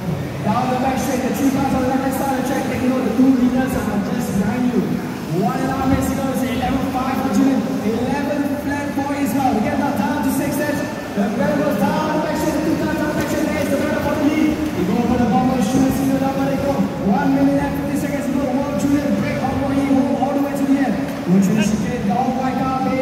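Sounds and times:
crowd: 0:00.0 - 0:23.0
commentary: 0:00.3 - 0:23.0.

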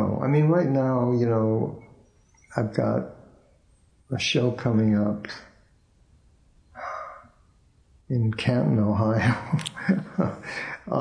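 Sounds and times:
man breathing in: 0:10.4 - 0:10.8.

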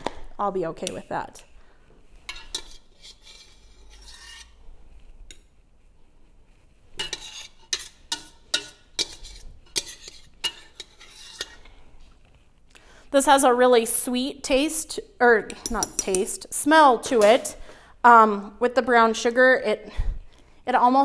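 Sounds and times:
metal spoon scraping a pot: 0:02.2 - 0:05.5, 0:06.9 - 0:11.8, 0:15.5 - 0:17.6
spoon clinking against pot: 0:07.0 - 0:11.6, 0:15.5 - 0:16.3.

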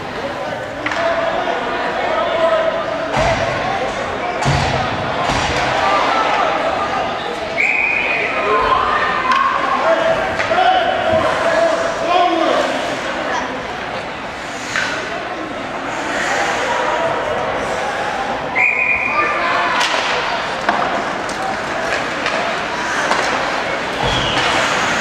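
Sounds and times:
indistinct voices in arena: 0:00.0 - 0:25.0
hockey sticks and puck knocking: 0:19.7 - 0:25.0.

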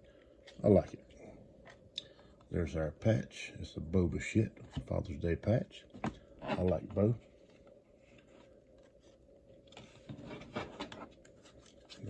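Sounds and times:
cards and foil pack rustling: 0:06.5 - 0:12.0.

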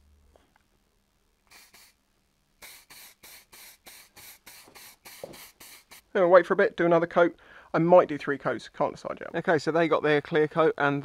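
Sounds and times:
spray gun short bursts: 0:01.5 - 0:02.0, 0:02.6 - 0:06.1.

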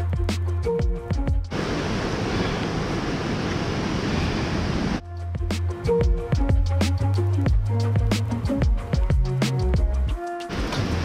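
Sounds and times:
music with bass and plucked notes: 0:00.0 - 0:01.5, 0:05.0 - 0:11.0
rushing water: 0:00.9 - 0:05.0, 0:05.7 - 0:11.0.

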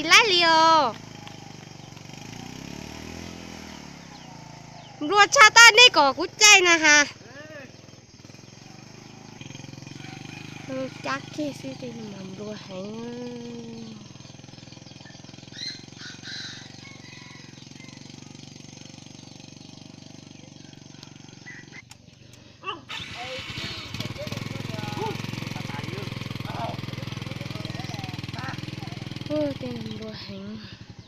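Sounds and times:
people talking: 0:00.0 - 0:01.0, 0:05.0 - 0:07.7, 0:10.7 - 0:14.1, 0:22.6 - 0:30.7
small motorcycle engine running: 0:00.0 - 0:31.0.

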